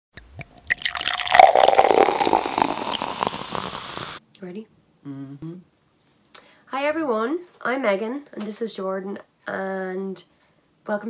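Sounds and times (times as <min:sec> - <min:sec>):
loud hissing swell: 0:01.3 - 0:04.2.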